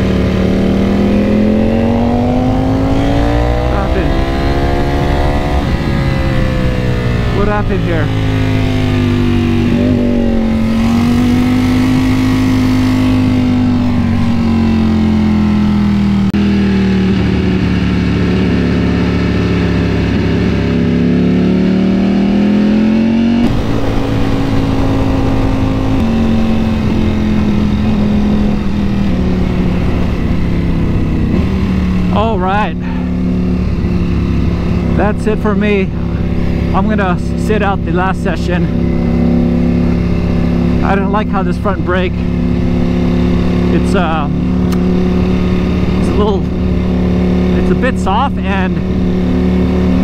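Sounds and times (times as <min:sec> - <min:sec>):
wind noise: 0:00.0 - 0:16.1, 0:17.0 - 0:47.7
motorcycle engine at low revs: 0:00.0 - 0:50.0.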